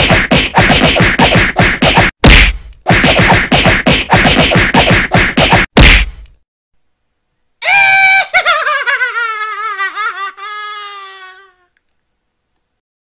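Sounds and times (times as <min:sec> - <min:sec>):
punch sound effects: 0:00.0 - 0:06.2.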